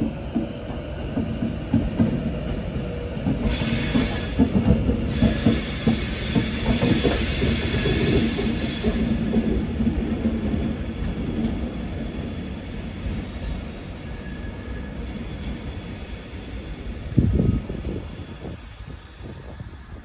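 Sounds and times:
train wheels knocking over rail joints: 0:00.0 - 0:10.8
train rumble: 0:00.0 - 0:20.0.

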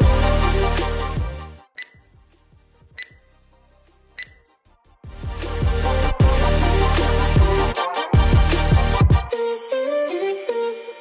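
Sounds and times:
background music: 0:00.0 - 0:11.0
short high electronic beeps: 0:01.8 - 0:02.0, 0:03.0 - 0:03.2, 0:04.2 - 0:04.4.

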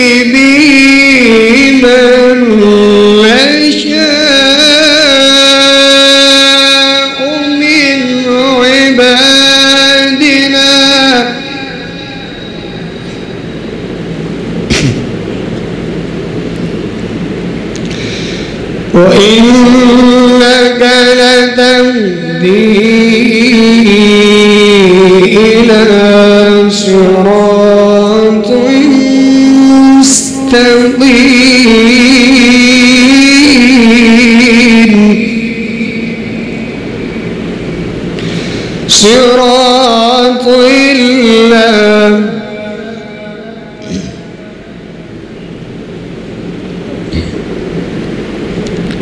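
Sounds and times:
man reciting melodically: 0:00.0 - 0:13.0, 0:18.9 - 0:36.8, 0:38.8 - 0:44.8
quiet steady noise: 0:00.0 - 0:49.0
rumbling crowd background noise: 0:00.0 - 0:49.0
short sharp sound: 0:14.6 - 0:15.2.

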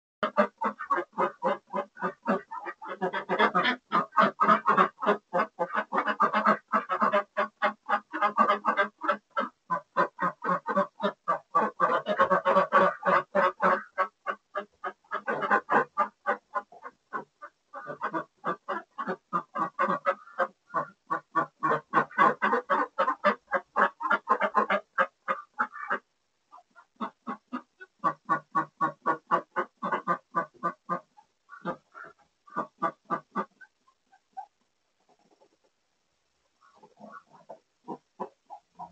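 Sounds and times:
ducks quacking loudly: 0:00.2 - 0:34.5, 0:36.6 - 0:38.9.

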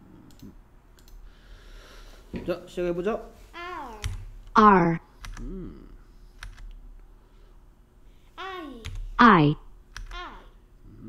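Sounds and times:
low steady hum: 0:00.0 - 0:11.0
computer keys clicking: 0:00.2 - 0:01.2, 0:04.0 - 0:04.3, 0:05.2 - 0:05.5, 0:06.4 - 0:06.8, 0:08.8 - 0:09.2, 0:09.9 - 0:10.2.

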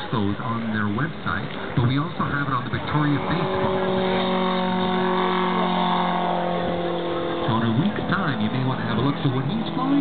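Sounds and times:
model plane engine droning: 0:00.6 - 0:10.0.

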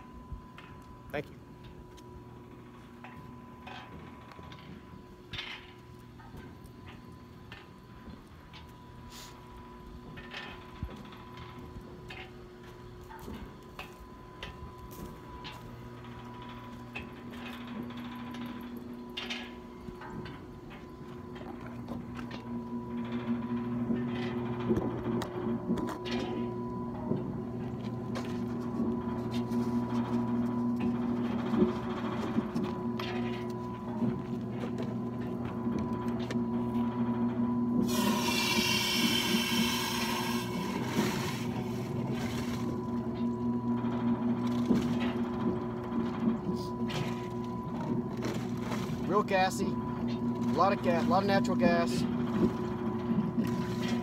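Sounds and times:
pumpjack humming: 0:00.0 - 0:54.0.

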